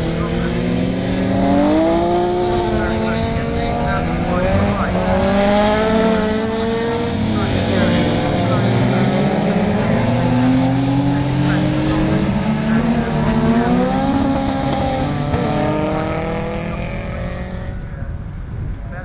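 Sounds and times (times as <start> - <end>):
racing car engines: 0.0 - 19.0.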